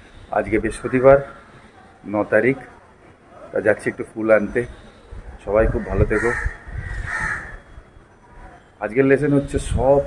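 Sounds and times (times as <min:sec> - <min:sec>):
crow cawing: 0:00.7 - 0:01.6, 0:05.8 - 0:07.8.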